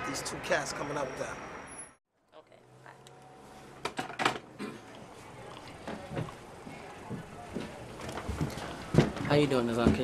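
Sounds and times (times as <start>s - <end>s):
footsteps on a hard floor: 5.9s - 10.0s.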